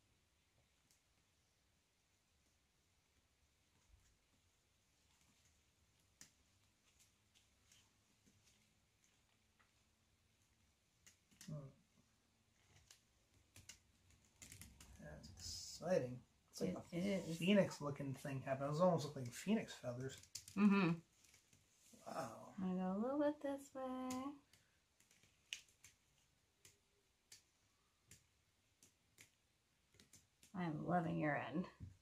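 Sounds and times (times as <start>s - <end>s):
faint clicks and taps: 0.6s - 1.4s, 3.1s - 15.5s, 19.0s - 21.8s, 23.7s - 30.6s.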